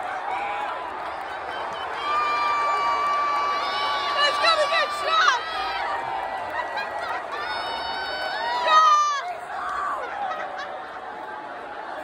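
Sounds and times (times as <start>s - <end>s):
crowd yelling and cheering: 0.0s - 12.0s.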